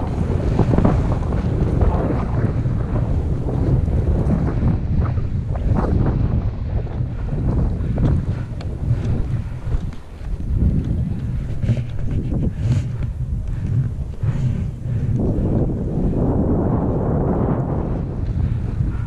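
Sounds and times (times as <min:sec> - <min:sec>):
wind buffeting microphone: 0:00.0 - 0:19.0
skis scraping over snow: 0:07.3 - 0:18.6.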